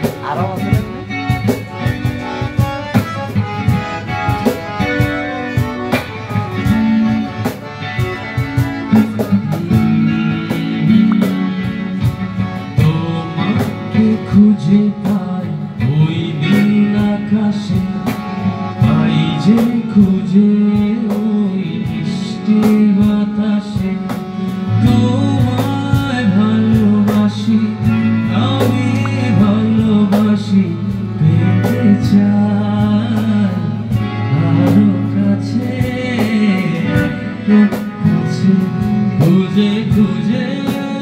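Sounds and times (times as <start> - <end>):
man singing: 0.0 - 2.9, 8.8 - 41.0
drum beat: 0.0 - 32.2, 35.6 - 41.0
electric guitar playing: 0.0 - 41.0.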